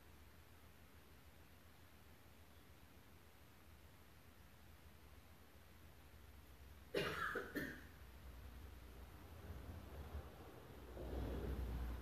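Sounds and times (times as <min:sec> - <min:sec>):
faint low room hum: 0:00.0 - 0:12.0
person coughing: 0:06.9 - 0:08.0.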